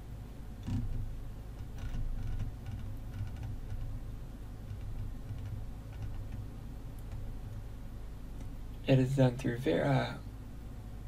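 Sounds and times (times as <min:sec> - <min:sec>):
steady low hum: 0:00.0 - 0:11.0
mouse scroll wheel ticking: 0:01.6 - 0:03.9, 0:04.6 - 0:07.2.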